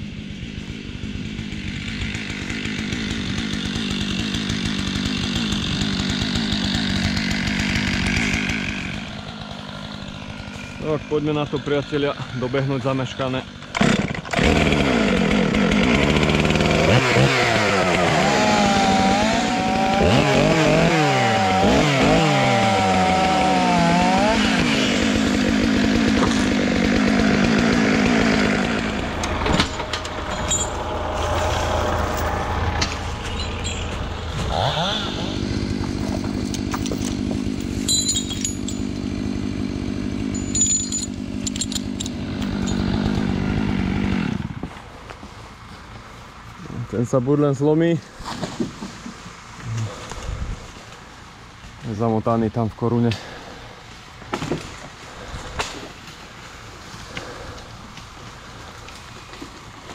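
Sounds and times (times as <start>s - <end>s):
chainsaw revving: 0.0s - 44.8s, 49.6s - 51.1s, 53.1s - 59.9s.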